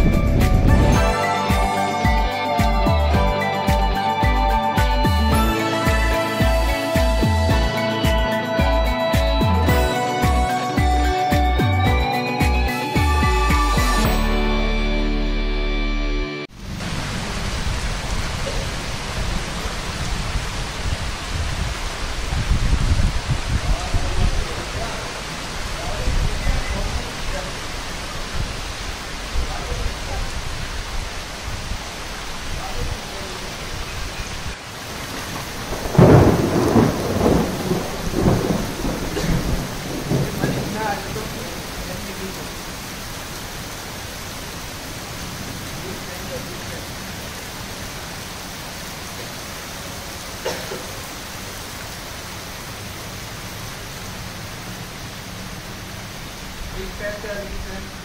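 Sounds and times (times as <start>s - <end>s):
heavy rain: 0.0s - 58.0s.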